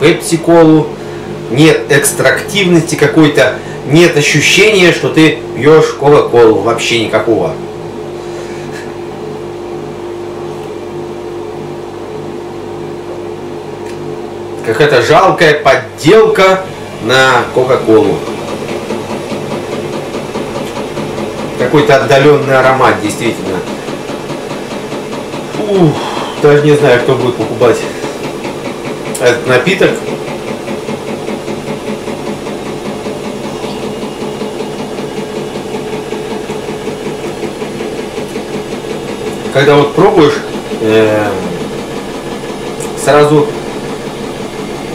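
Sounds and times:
appliance humming: 0:00.0 - 0:44.9.

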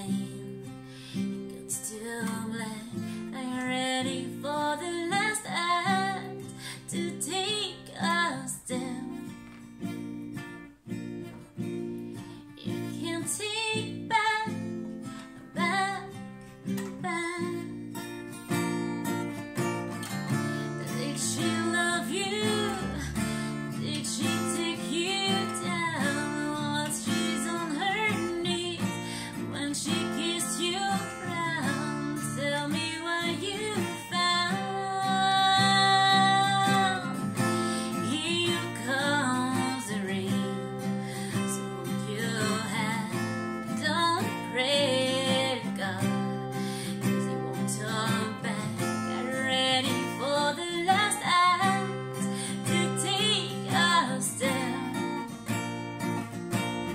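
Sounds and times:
woman singing: 0:00.0 - 0:09.6, 0:12.2 - 0:55.7
acoustic guitar: 0:00.0 - 0:56.9.

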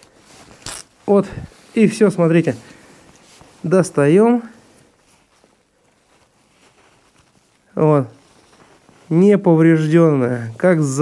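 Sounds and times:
soft cloth rustling: 0:00.0 - 0:11.0.

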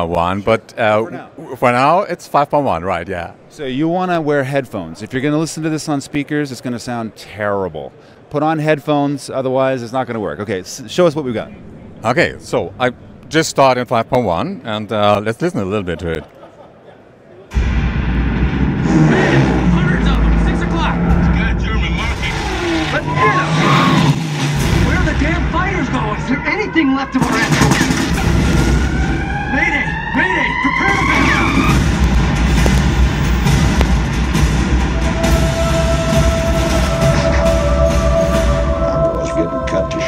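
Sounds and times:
film soundtrack music: 0:17.5 - 0:40.0
rising tones: 0:17.5 - 0:40.0
steady tone: 0:17.5 - 0:40.0
voices: 0:19.1 - 0:28.4, 0:29.2 - 0:31.8, 0:35.3 - 0:40.0.

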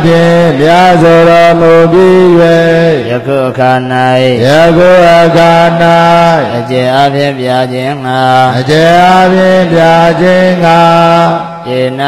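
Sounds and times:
monk chanting: 0:00.0 - 0:12.0.

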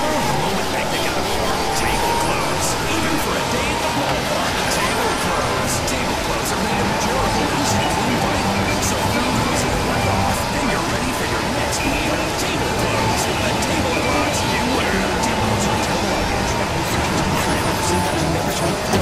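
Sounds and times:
jumble of overlapping voices and music: 0:00.0 - 0:19.0.

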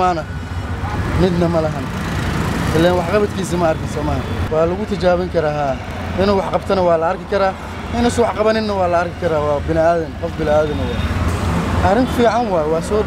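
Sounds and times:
man talking into a microphone: 0:00.0 - 0:11.2, 0:11.8 - 0:13.0
street traffic rumble: 0:00.0 - 0:13.0.

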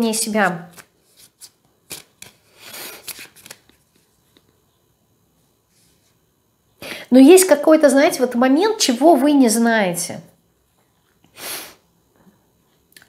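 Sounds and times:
cards being shuffled: 0:00.7 - 0:04.5.

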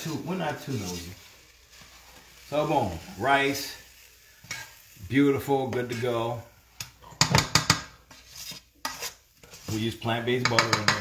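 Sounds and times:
spoon knocking against pot: 0:07.2 - 0:07.9, 0:10.4 - 0:11.0.

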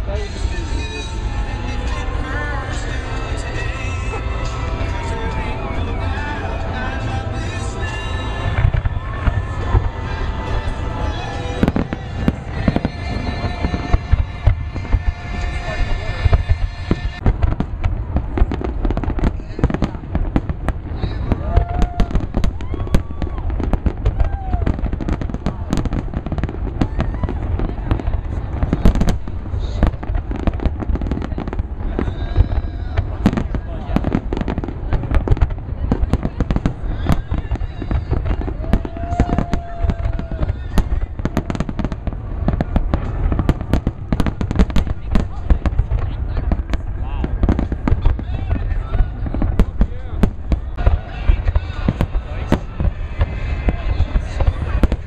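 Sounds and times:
crowd voices: 0:00.0 - 0:55.0
fireworks booming and crackling: 0:00.0 - 0:55.0.

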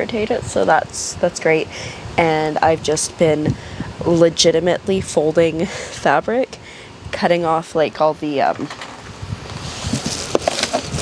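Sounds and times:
bag rustling and crinkling: 0:09.5 - 0:11.0.

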